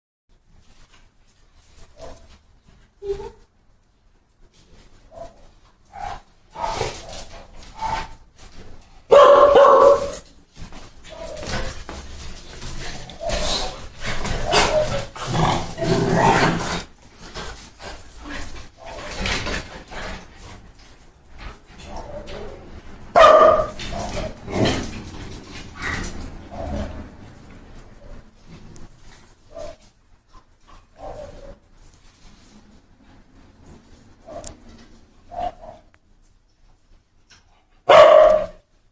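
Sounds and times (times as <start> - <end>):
dogs barking and yipping: 9.1 - 10.3, 11.0 - 12.0, 13.0 - 15.2, 21.8 - 27.2, 31.0 - 31.6, 35.2 - 35.9, 37.8 - 38.6.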